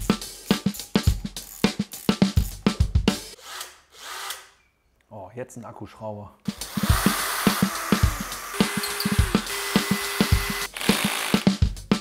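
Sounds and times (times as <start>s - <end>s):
background music with drum beat: 0.0s - 3.4s, 6.4s - 12.0s
cordless drill driving a screw: 3.4s - 4.6s, 6.6s - 11.5s.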